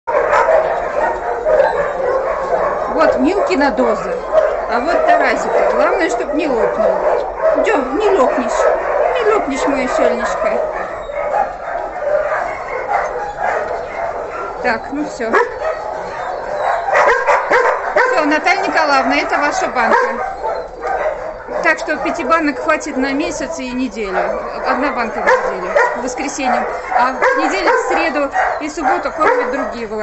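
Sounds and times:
many dogs barking: 0.1s - 30.0s.

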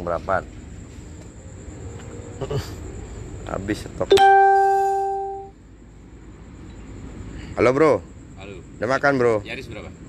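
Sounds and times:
bell-like electronic chime: 4.1s - 5.5s.

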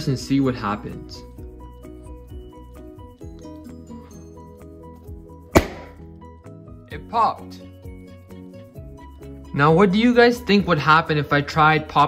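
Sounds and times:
balloon bursting: 5.5s - 6.0s.

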